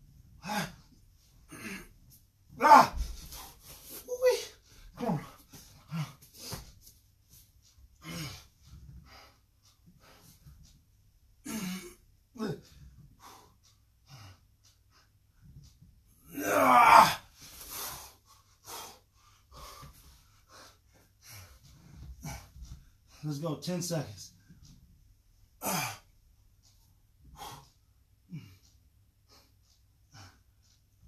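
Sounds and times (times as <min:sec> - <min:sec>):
man grunting and groaning: 0:00.4 - 0:00.9, 0:01.5 - 0:01.9, 0:02.6 - 0:03.2, 0:04.0 - 0:06.2, 0:08.0 - 0:08.4, 0:11.4 - 0:12.8, 0:16.2 - 0:17.3, 0:25.6 - 0:26.0
man breathing hard: 0:17.5 - 0:23.3, 0:27.2 - 0:30.8.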